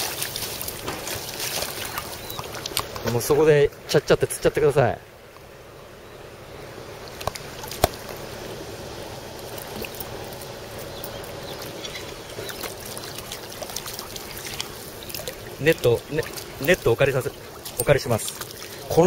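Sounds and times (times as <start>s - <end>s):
water trickling: 0.0s - 3.4s, 6.9s - 19.0s.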